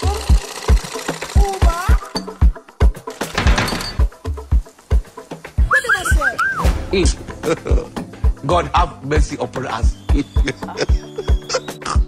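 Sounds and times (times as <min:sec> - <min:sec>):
sewing machine running: 0:00.0 - 0:02.1
background music with steady beat: 0:00.0 - 0:12.0.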